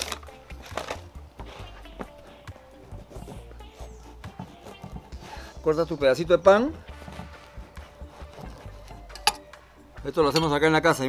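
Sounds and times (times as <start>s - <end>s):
knife sawing through bread crust: 6.9s - 8.9s.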